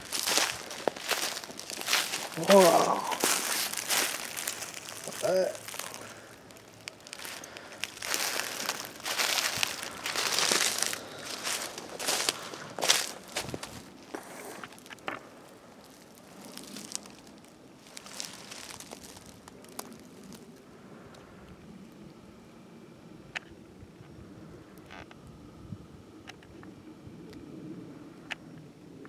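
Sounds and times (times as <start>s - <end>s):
footsteps crunching dry leaves: 0.0s - 20.5s
twigs snapping: 0.0s - 20.5s
faint rustling: 0.0s - 20.6s.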